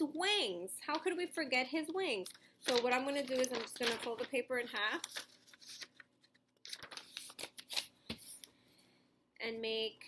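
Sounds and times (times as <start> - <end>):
paper rustling and crackling: 2.2 - 8.5.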